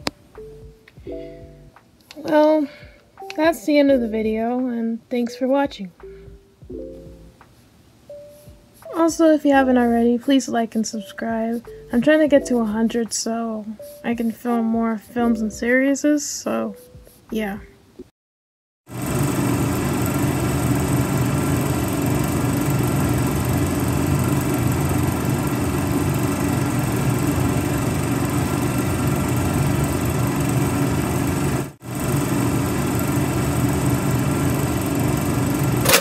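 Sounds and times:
motor-like drone: 0:18.9 - 0:36.0.

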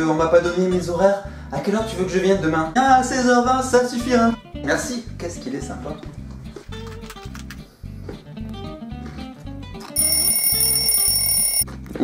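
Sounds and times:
phone ringing: 0:10.0 - 0:11.7.

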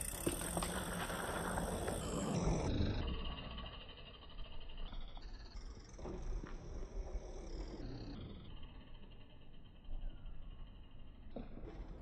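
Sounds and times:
bike tyres rolling on dirt: 0:00.0 - 0:12.0.

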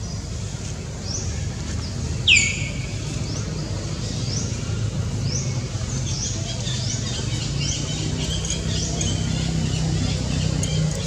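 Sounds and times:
birds chirping: 0:01.0 - 0:11.0.

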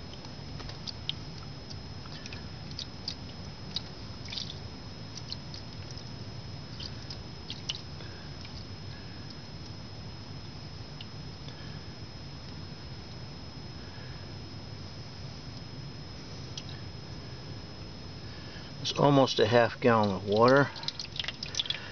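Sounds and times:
small splashes and clicks: 0:00.1 - 0:06.1, 0:06.7 - 0:07.8, 0:20.0 - 0:21.9.

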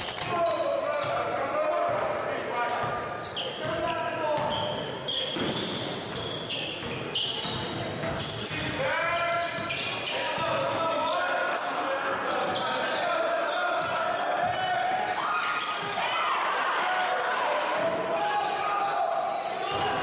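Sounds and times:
sneaker squeaks: 0:00.0 - 0:20.0
indistinct shouts: 0:13.4 - 0:20.0.

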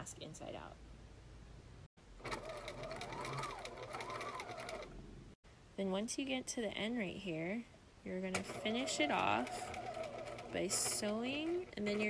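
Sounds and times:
sewing machine stitching: 0:02.2 - 0:05.0, 0:08.3 - 0:12.0.

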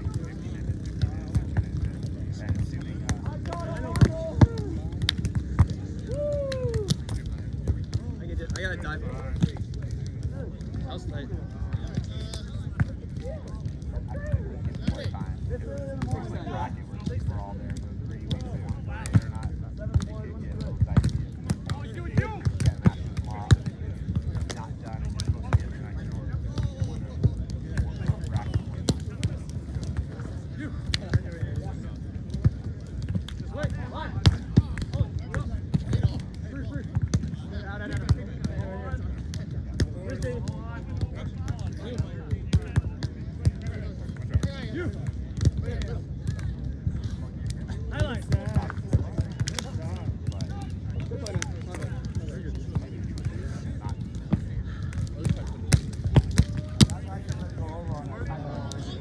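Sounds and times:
hands slapping volleyball: 0:00.0 - 0:10.3, 0:17.7 - 0:31.4, 0:32.3 - 0:38.6, 0:47.5 - 0:53.3, 0:54.2 - 0:57.6
people talking: 0:00.0 - 0:59.0.

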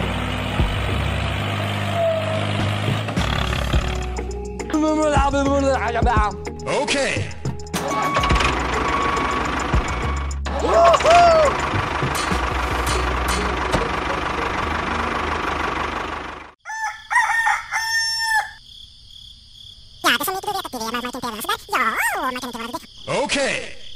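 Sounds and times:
toy tractor engine rumbling: 0:00.0 - 0:04.1, 0:07.9 - 0:16.5
rooster crowing: 0:16.6 - 0:18.6
high insect chirr: 0:16.6 - 0:23.9.

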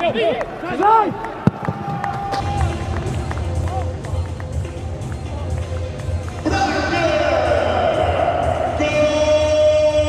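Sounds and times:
broadcast music: 0:01.7 - 0:10.0.

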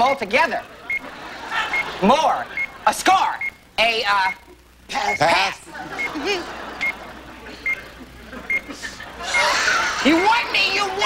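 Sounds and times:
studio noise: 0:00.0 - 0:11.0
voices: 0:00.2 - 0:11.0
countdown clock beeping: 0:01.7 - 0:05.4, 0:06.8 - 0:07.0.

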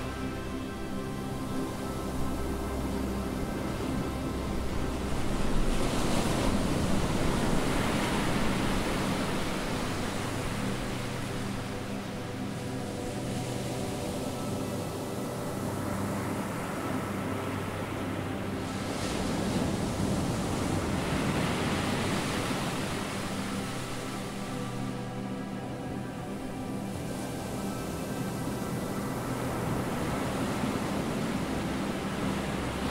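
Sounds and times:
background music with held tones: 0:00.0 - 0:32.9
ocean surf rushing: 0:00.0 - 0:32.9.

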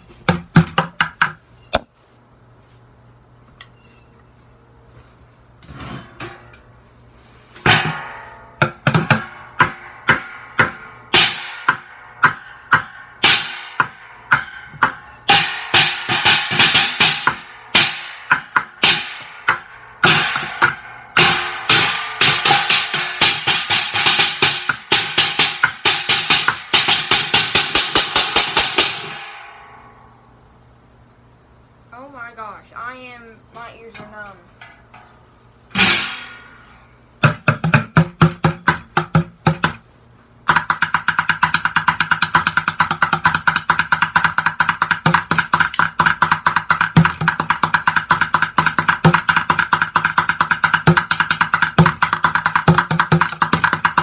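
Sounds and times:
ringing metallic hits: 0:07.6 - 0:18.3, 0:35.7 - 0:37.0
drumsticks beating on buckets: 0:07.6 - 0:29.2, 0:37.2 - 0:39.8, 0:40.4 - 0:54.0.

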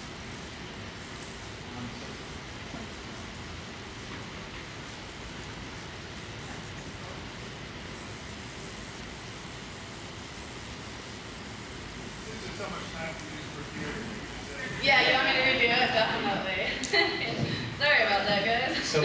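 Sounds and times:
room noise hiss: 0:00.0 - 0:19.0.

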